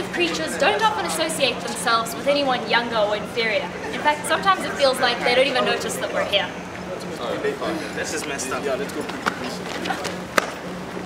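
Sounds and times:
faint indistinct voices: 0.0s - 11.0s
steady low hum: 0.0s - 11.0s.

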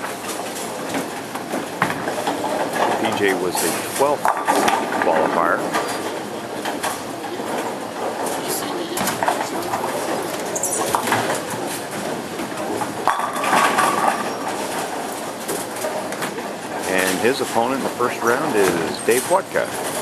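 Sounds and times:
bowling balls rolling: 0.0s - 20.0s
bowling pins clattering: 0.0s - 20.0s
background voices: 2.8s - 11.9s, 16.8s - 20.0s.

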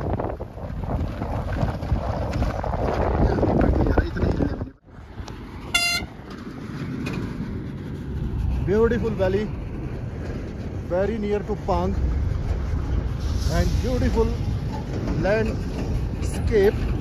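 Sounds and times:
car wind and road noise: 0.0s - 17.0s
vehicle horn toot: 5.7s - 6.2s.

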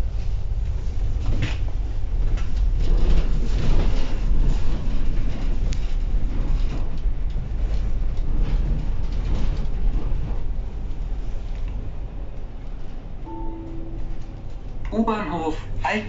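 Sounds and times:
bus engine and road rumble: 0.0s - 16.0s.

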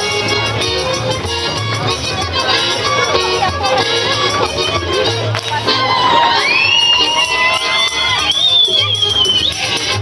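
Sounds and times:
folk dance music: 0.0s - 10.0s
crowd cheering and shouting: 0.5s - 10.0s.

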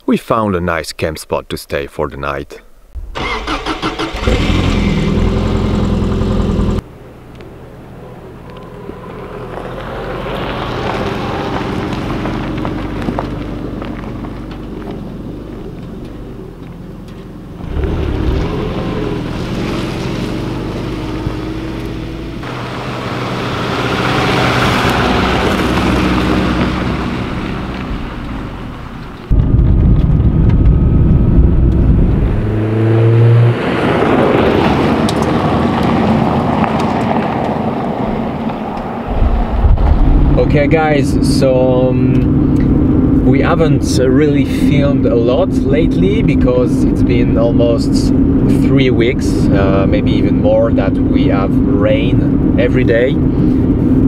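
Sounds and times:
car engine running: 3.0s - 32.8s, 35.0s - 54.0s
car driving past on gravel: 3.2s - 29.4s, 32.4s - 43.5s.

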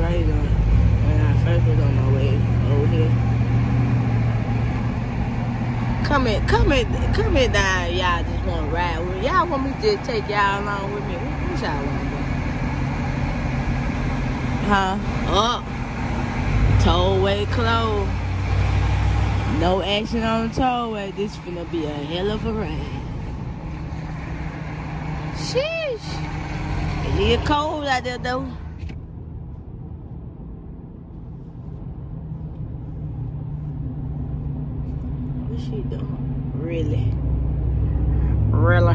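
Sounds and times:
vehicle engine and road noise: 0.0s - 38.9s.

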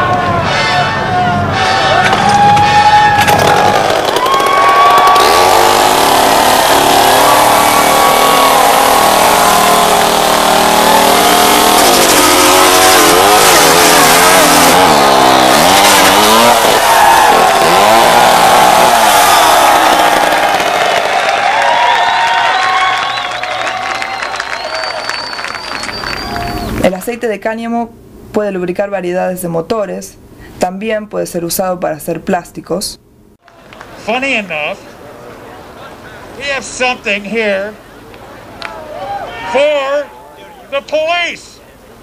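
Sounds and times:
chainsaw revving: 3.3s - 21.4s.

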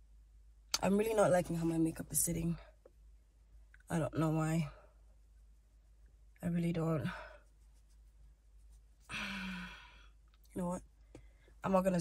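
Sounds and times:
woman sighing: 9.1s - 10.0s.

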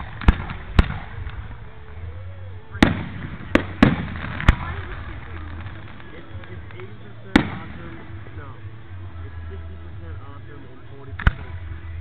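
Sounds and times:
fireworks bangs: 0.0s - 2.1s, 2.7s - 8.4s.

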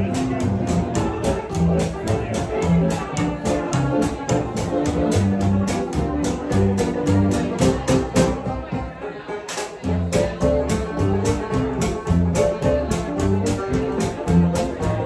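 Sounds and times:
quick drum beat: 0.0s - 8.4s, 10.1s - 15.0s
upright bass plucking: 0.0s - 15.0s.

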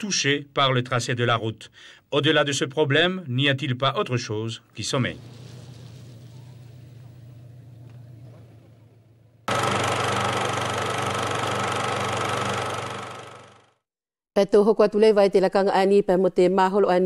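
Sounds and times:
faint low hum: 5.1s - 9.5s
film projector clattering: 9.5s - 13.7s.

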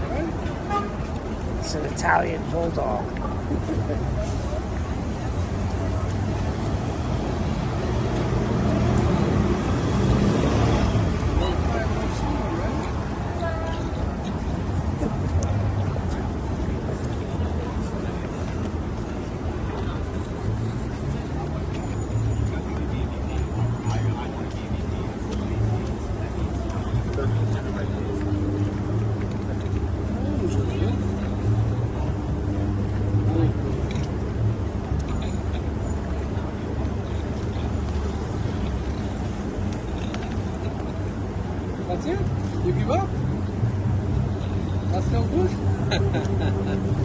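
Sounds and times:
city street traffic rumbling: 0.0s - 47.0s
vehicle passing: 3.9s - 21.7s.

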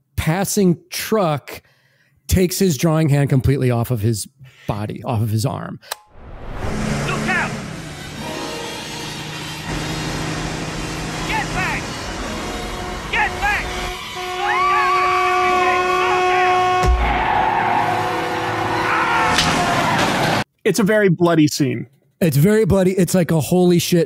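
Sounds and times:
car crash: 6.0s - 14.3s, 16.8s - 20.4s
vehicle horn blaring: 6.7s - 19.4s
woman screaming: 14.4s - 15.3s, 18.7s - 19.9s.

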